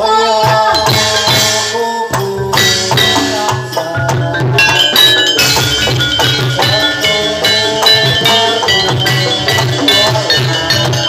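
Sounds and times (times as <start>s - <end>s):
gamelan music: 0.0s - 11.0s
hand drums: 0.0s - 11.0s.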